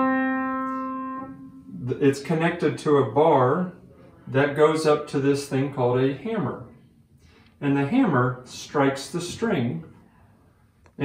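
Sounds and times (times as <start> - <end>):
upright piano note: 0.0 - 2.1.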